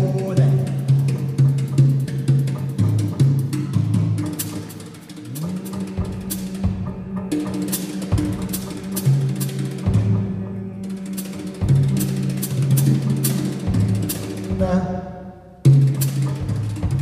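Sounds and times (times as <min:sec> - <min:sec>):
drum strikes: 0:00.0 - 0:10.4, 0:11.1 - 0:17.0
wind instrument low held notes: 0:05.1 - 0:13.0.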